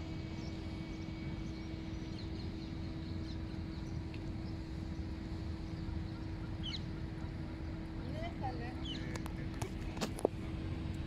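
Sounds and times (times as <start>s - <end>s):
faint steady hum: 0.0s - 11.0s
steady low rumble: 0.0s - 11.0s.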